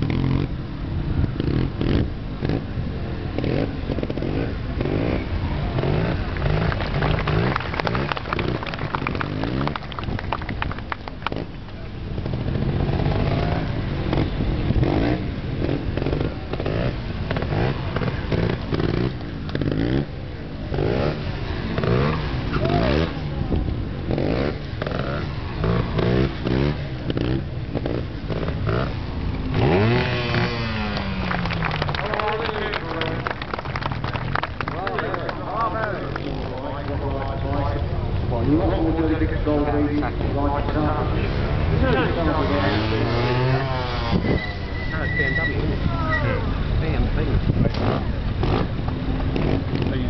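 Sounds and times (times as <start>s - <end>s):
motorcycle engines revving: 0.0s - 50.0s.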